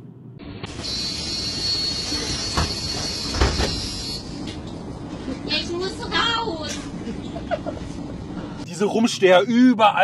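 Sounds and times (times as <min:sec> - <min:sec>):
bus doors thudding shut: 0:00.8 - 0:04.8.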